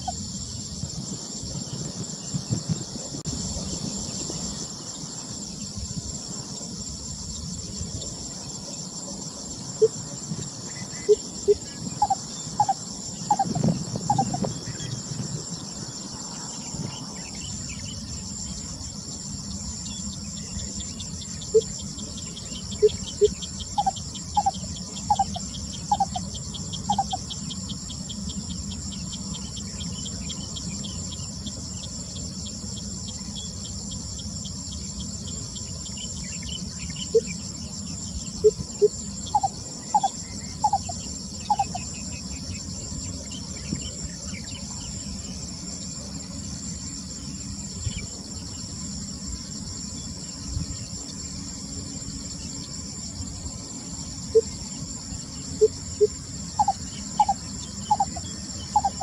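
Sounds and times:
insect chorus trilling: 0:00.0 - 0:59.0.

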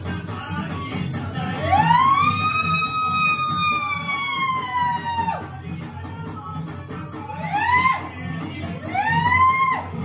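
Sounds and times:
music with low beat: 0:00.0 - 0:10.0.

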